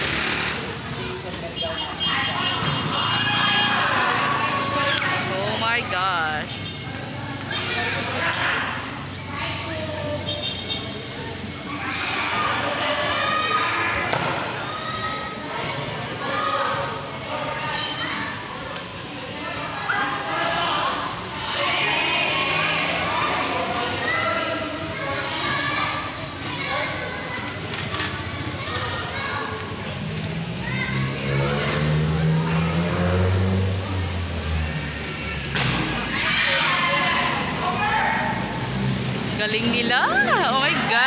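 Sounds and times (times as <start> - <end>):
people calling out: 1.3 - 27.6, 39.4 - 41.0.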